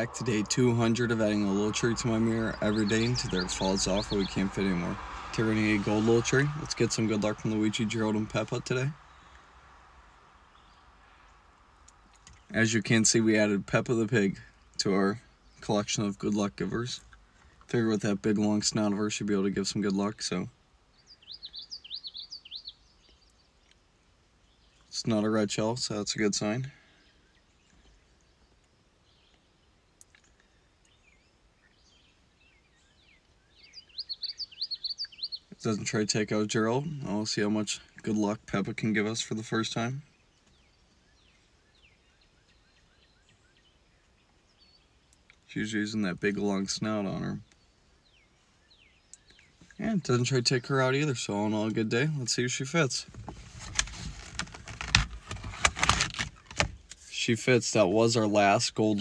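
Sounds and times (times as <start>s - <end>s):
birds chirping: 0.0s - 59.0s
cardboard air fresheners rustling: 53.1s - 56.8s.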